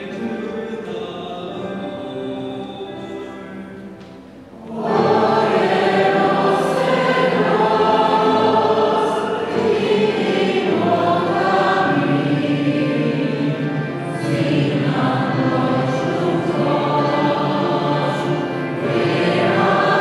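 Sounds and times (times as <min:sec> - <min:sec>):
choir singing: 0:00.0 - 0:20.0.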